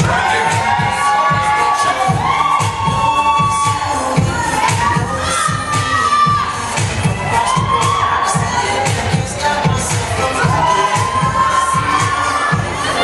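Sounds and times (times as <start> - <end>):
crowd shouting and cheering: 0.0 - 13.0
pop dance music: 0.0 - 13.0.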